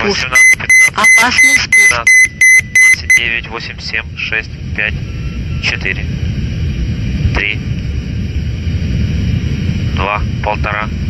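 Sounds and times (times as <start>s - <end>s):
aircraft cockpit engine rumble: 0.0s - 11.0s.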